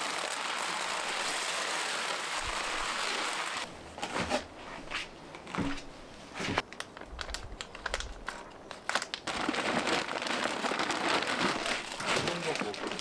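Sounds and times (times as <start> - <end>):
soil pouring into planter: 0.0 - 3.7
plastic bag crinkling: 6.7 - 13.0.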